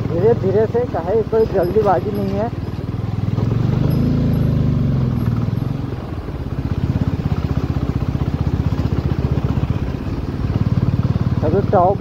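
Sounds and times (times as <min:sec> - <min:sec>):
motorcycle engine throbbing: 0:00.0 - 0:12.0.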